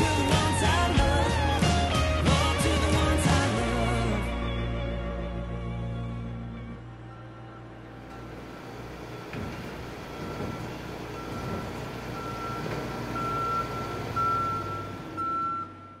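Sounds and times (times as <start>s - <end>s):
street traffic hum: 7.9s - 15.8s
vehicle reversing alarm beeping: 8.1s - 16.0s.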